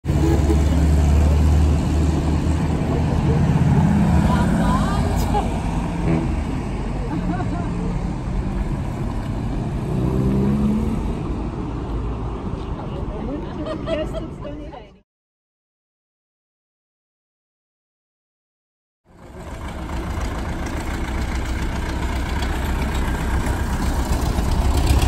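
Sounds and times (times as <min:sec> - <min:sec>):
old cars driving over cobblestones: 0:00.0 - 0:14.5, 0:19.1 - 0:25.0.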